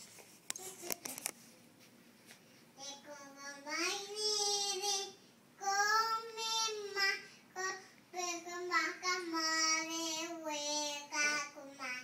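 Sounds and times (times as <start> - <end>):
toddler singing wordlessly: 2.8 - 12.0.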